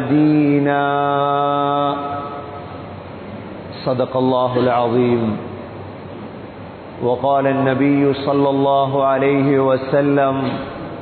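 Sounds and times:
man chanting recitation: 0:00.0 - 0:02.6, 0:03.7 - 0:05.6, 0:07.0 - 0:10.8.

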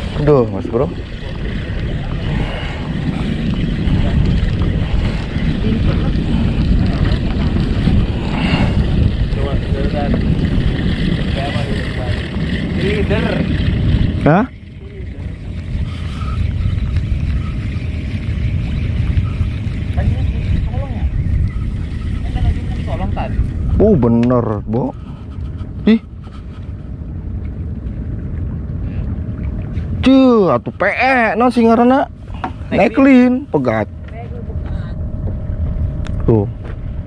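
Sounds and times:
wind rumbling on microphone: 0:00.0 - 0:37.0.

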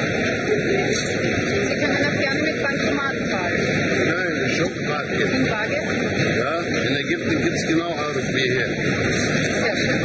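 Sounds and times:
terminal hall noise: 0:00.0 - 0:10.0.

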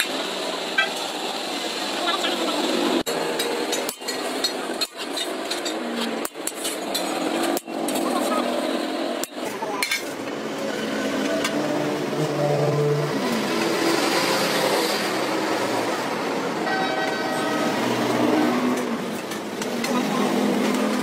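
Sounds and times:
sustained horn-like tones: 0:16.6 - 0:18.9.

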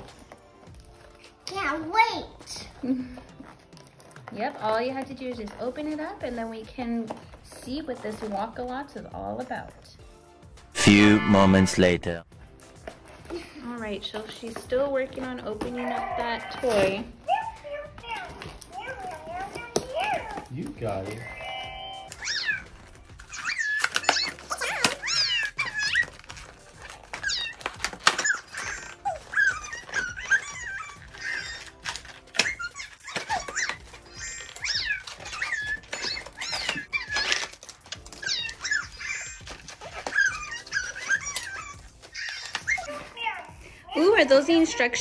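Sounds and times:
background music: 0:00.0 - 0:45.0
cardboard packaging clicks: 0:18.1 - 0:43.0.

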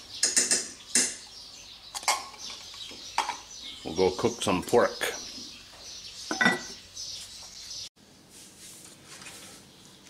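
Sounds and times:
metal spoon clinking on ceramic: 0:06.3 - 0:06.8.

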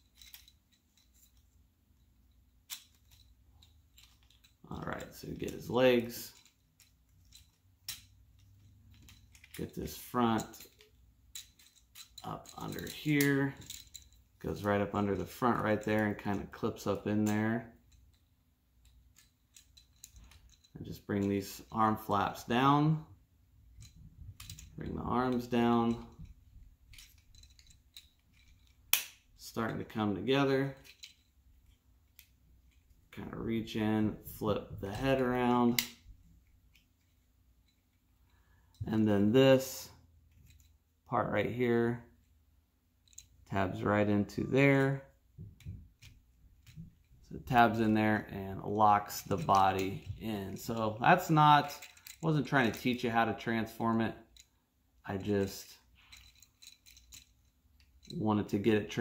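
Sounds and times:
plastic toy parts clicking: 0:26.9 - 0:29.2, 0:51.1 - 0:53.0.

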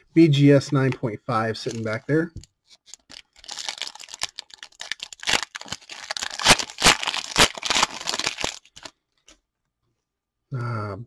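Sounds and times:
foil wrapper tearing and crinkling: 0:02.7 - 0:08.9.

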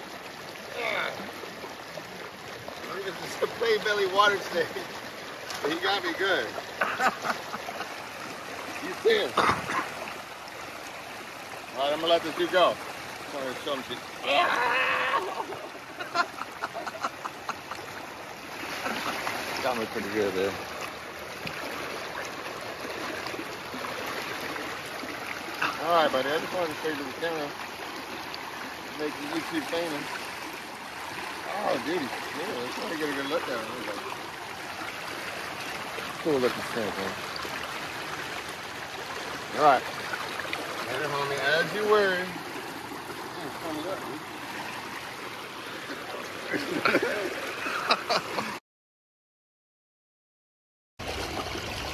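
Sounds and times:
river water rushing over rocks: 0:00.0 - 0:48.5.

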